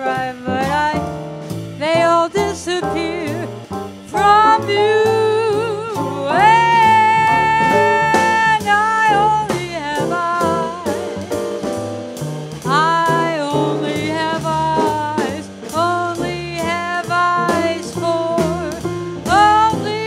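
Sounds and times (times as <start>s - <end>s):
woman singing jazz: 0.0s - 11.4s, 12.6s - 20.0s
drums: 0.0s - 20.0s
upright bass: 0.0s - 20.0s.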